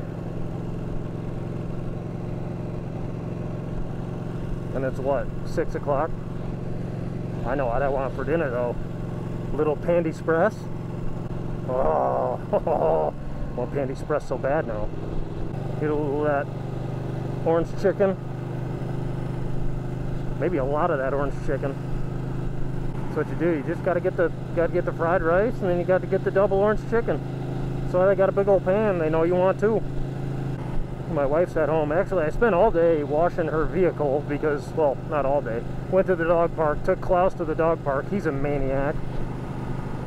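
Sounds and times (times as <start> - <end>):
motorcycle engine cruising: 0.0 - 40.0.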